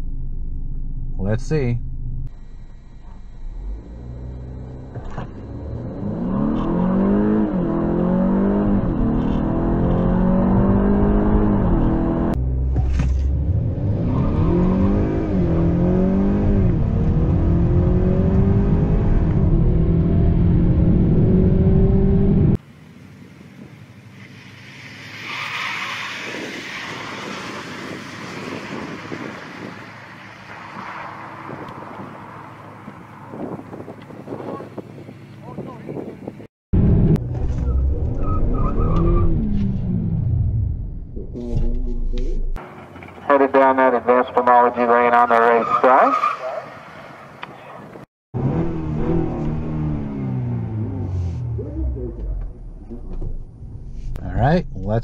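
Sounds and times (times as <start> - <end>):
outdoor noise: 0.0 - 55.0
car engine accelerating hard: 3.0 - 22.6, 48.4 - 54.5.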